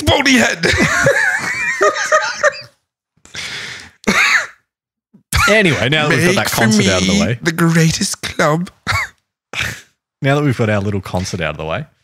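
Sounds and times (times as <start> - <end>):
man laughing: 0.6 - 2.8, 6.1 - 7.3.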